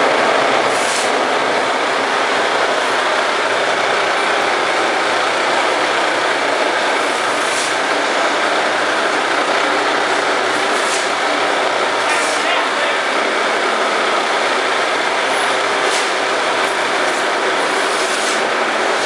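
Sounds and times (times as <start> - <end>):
plastering machine running: 0.0 - 19.0.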